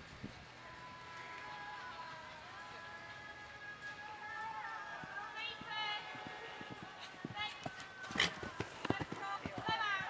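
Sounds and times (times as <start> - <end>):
faint voices: 0.8 - 10.0
horse hooves cantering on sand: 1.0 - 10.0.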